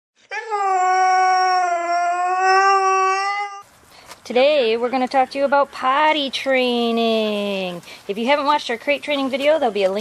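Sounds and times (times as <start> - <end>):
dog howling: 0.3 - 3.6.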